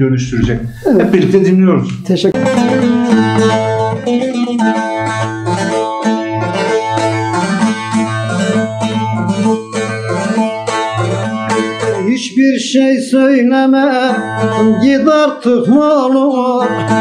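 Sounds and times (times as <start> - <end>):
long-necked lute plucked solo: 2.3 - 12.1.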